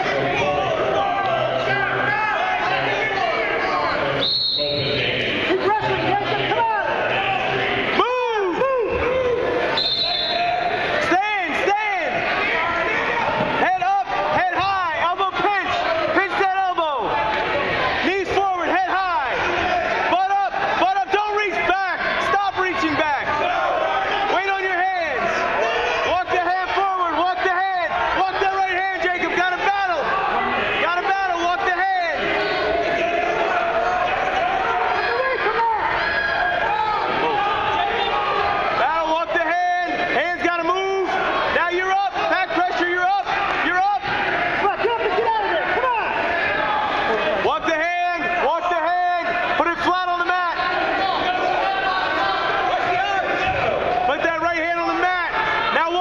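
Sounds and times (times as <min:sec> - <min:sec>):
several voices shouting: 0:05.3 - 0:56.0.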